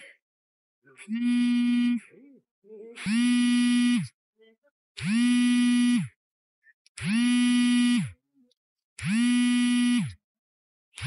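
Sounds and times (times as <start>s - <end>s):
electronic buzzer beeping: 1.0s - 2.1s, 3.0s - 4.2s, 5.0s - 6.2s, 7.0s - 8.2s, 9.0s - 10.2s.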